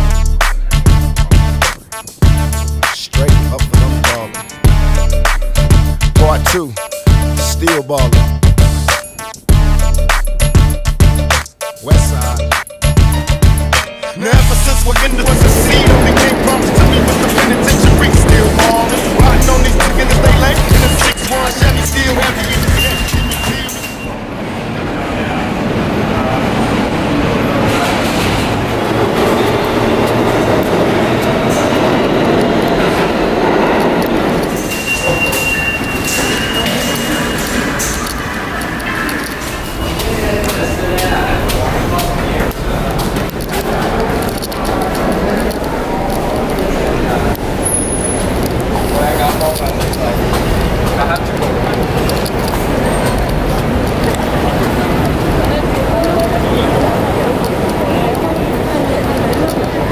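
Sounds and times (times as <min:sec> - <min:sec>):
traffic noise: 0:00.0 - 0:59.9
people's voices: 0:02.8 - 0:04.6, 0:06.1 - 0:08.2, 0:11.8 - 0:12.6, 0:14.2 - 0:59.9
subway train wheels rumbling: 0:13.1 - 0:59.9.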